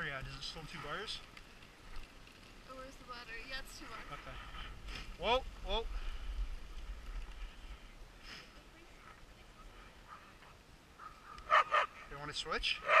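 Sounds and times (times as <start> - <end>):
sled rumbling: 0.0 - 12.9
sled dogs barking and yipping: 8.9 - 13.0.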